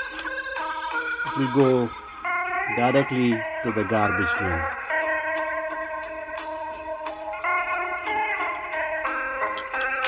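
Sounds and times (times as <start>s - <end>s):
wavering cassette music playback: 0.0s - 10.0s.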